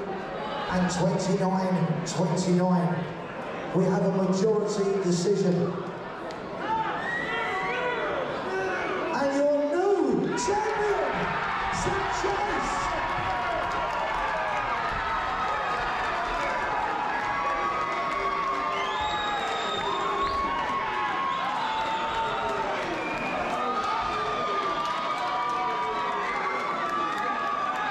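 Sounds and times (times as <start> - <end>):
crowd cheering and shouting: 0.0 - 27.9.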